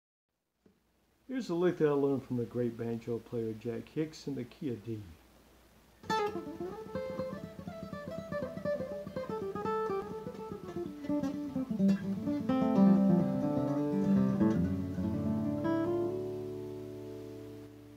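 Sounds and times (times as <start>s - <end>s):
acoustic guitar picked lick: 6.0s - 17.9s.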